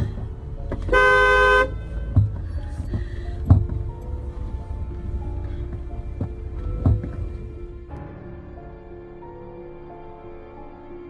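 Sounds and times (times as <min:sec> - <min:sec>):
car horn honking: 0:00.8 - 0:02.2.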